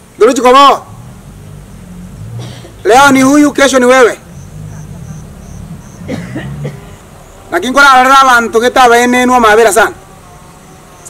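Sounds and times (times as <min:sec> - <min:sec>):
faint low hum: 0:00.1 - 0:11.0
high-pitched insect chirp: 0:00.9 - 0:07.6, 0:10.0 - 0:11.0.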